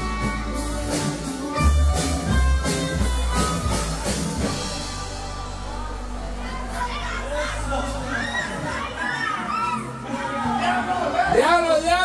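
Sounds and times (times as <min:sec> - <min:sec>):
crowd shouting and laughing: 0:00.0 - 0:12.0.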